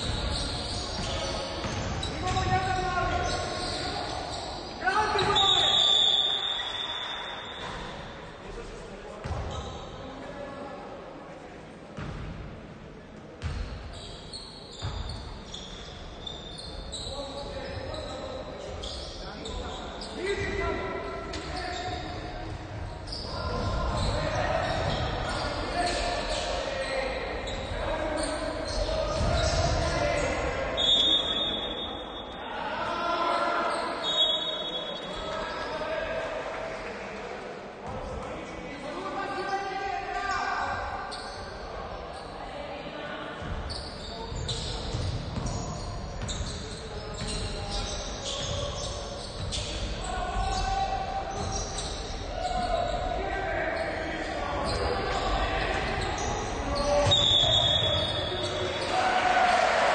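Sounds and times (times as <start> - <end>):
players shouting: 52.2 - 59.9.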